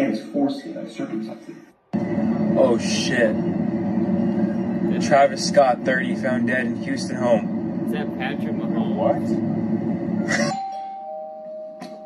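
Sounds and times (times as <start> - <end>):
two-note doorbell chime: 10.5 - 12.0.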